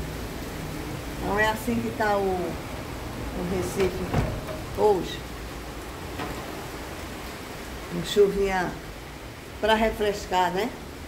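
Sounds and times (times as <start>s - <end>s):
steady rain falling: 0.0s - 11.0s.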